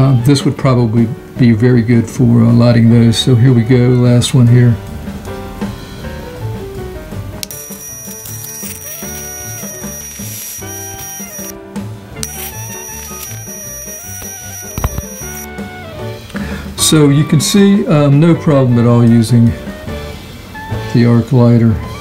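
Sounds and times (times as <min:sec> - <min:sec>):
background music: 0:00.0 - 0:22.0
electric arc lighter whine: 0:07.4 - 0:16.1.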